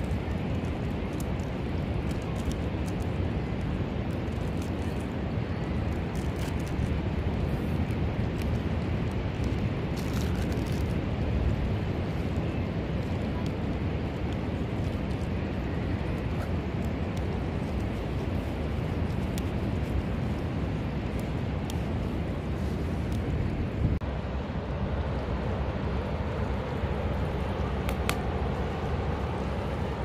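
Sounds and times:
wind on microphone: 0.0 - 30.0.

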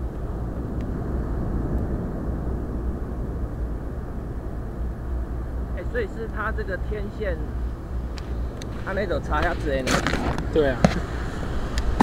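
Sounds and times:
distant surf hiss: 0.0 - 12.0
wind rumble on microphone: 0.0 - 12.0.

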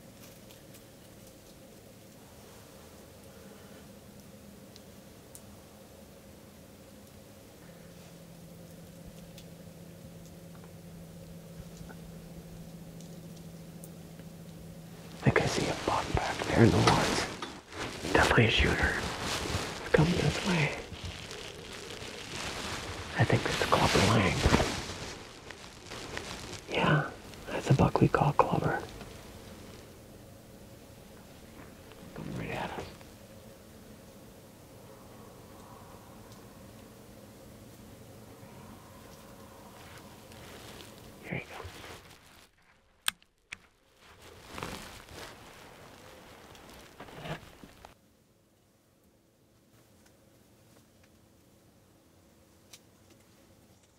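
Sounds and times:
outdoor background hiss: 0.0 - 53.9
soft rustling and shuffling: 7.1 - 33.6, 38.6 - 42.8, 43.6 - 48.0.

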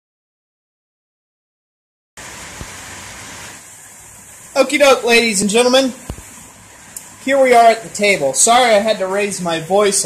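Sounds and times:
heavy rain hissing: 2.2 - 10.0
man speaking loudly: 4.6 - 6.0, 7.2 - 10.0.

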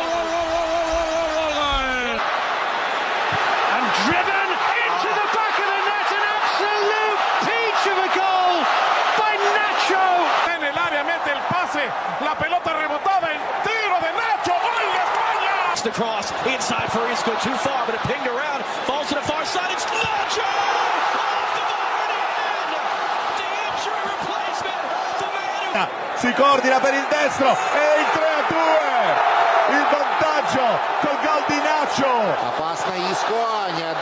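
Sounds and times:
excited shouted commentary: 0.0 - 34.0
stadium crowd noise: 0.0 - 34.0.

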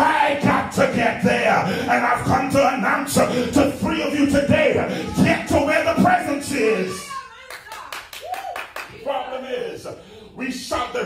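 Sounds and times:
hands clapping: 7.5 - 9.0.

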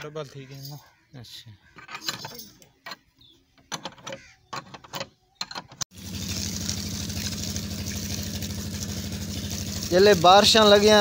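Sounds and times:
pump engine humming: 5.9 - 11.0
water gushing and splashing: 5.9 - 11.0.

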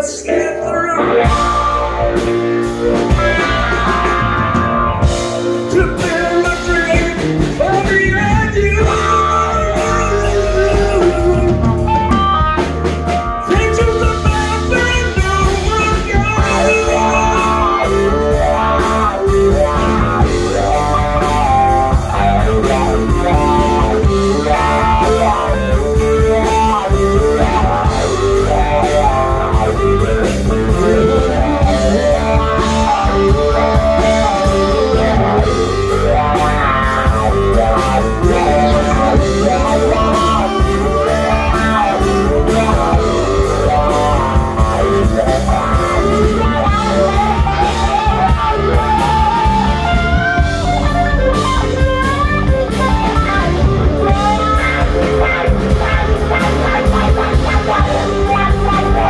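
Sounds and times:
bass: 0.0 - 59.0
drum kit: 0.0 - 59.0
guitar melody: 0.0 - 59.0.

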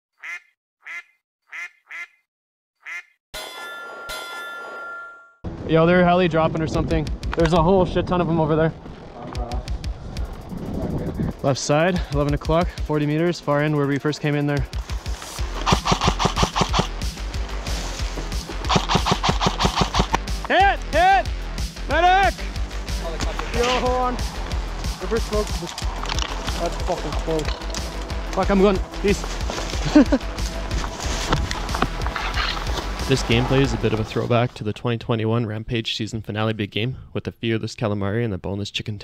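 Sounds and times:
duck quacking: 0.2 - 3.2
background music with bass: 5.5 - 34.5
airsoft guns firing bursts: 15.6 - 16.9, 18.7 - 20.2.

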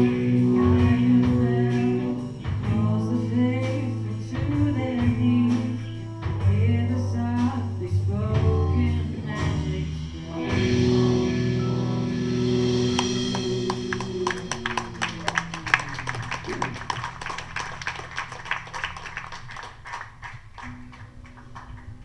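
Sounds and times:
audience applause: 13.0 - 22.0.

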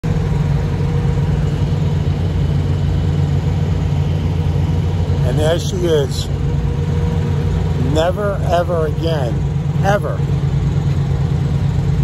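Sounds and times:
diesel truck engine idling: 0.0 - 12.0.

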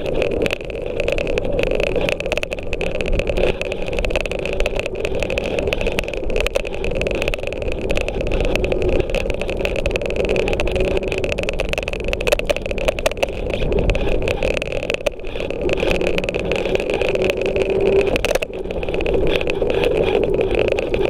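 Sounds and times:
high whine: 0.0 - 21.0
scooter rolling on concrete: 0.0 - 21.0
small clicks and rattles: 0.0 - 21.0.

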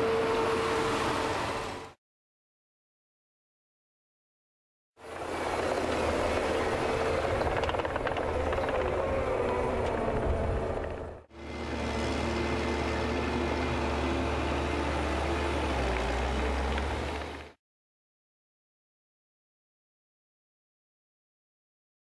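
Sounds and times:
diesel engine droning: 0.0 - 2.0, 5.0 - 17.6.

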